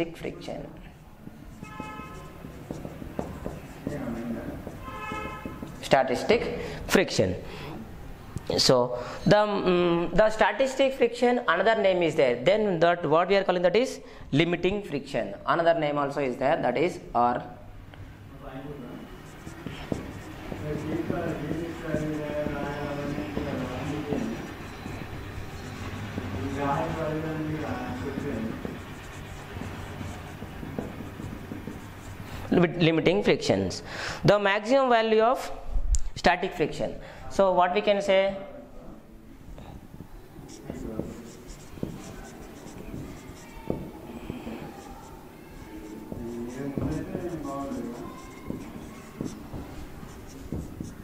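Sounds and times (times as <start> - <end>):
marker pen writing on whiteboard: 1.2 - 7.2, 18.0 - 33.6, 39.5 - 51.0.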